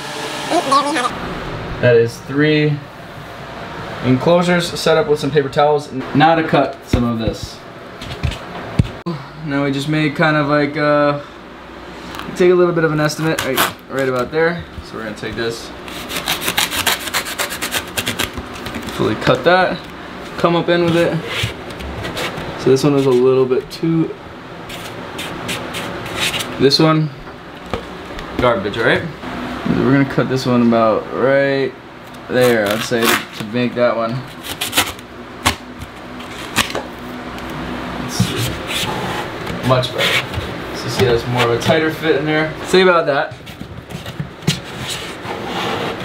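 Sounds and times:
foam rubbing and scraping: 0:15.8 - 0:19.0, 0:20.9 - 0:23.2, 0:24.7 - 0:26.6, 0:38.2 - 0:40.5, 0:44.5 - 0:46.0.

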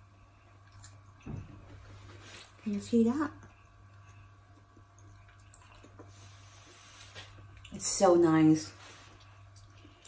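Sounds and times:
faint chewing and crunches: 0:00.6 - 0:01.3, 0:03.4 - 0:07.8, 0:09.0 - 0:10.0.

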